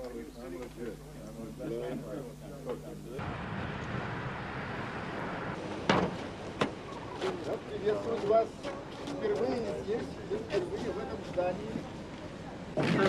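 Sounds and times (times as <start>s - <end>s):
outdoor noise: 0.0s - 13.0s.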